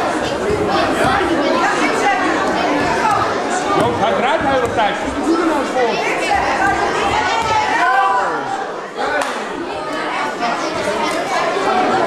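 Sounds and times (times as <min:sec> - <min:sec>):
crowd chatter in a sports hall: 0:00.0 - 0:12.0.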